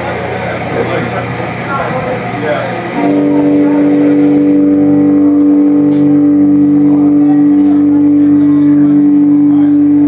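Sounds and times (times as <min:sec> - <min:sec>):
electric guitar droning note: 0:02.9 - 0:10.0.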